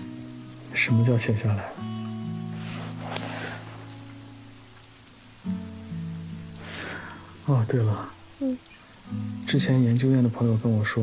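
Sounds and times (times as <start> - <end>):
soft sustained background music: 0.0 - 11.0
brief soft hiss: 2.6 - 3.8.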